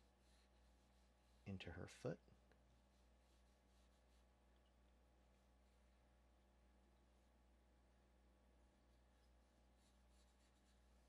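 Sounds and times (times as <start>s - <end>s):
low steady hum: 0.0s - 11.0s
pencil scratching on paper: 2.8s - 4.4s, 8.9s - 11.0s.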